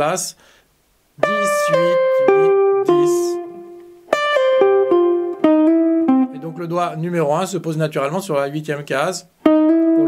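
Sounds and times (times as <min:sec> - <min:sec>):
jazz guitar single-note phrase: 0:01.2 - 0:07.3, 0:09.4 - 0:10.0.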